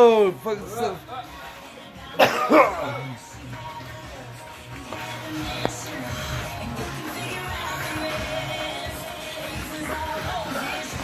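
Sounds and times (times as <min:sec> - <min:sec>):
faint background music: 0:00.0 - 0:11.0
person coughing hard: 0:02.2 - 0:03.2.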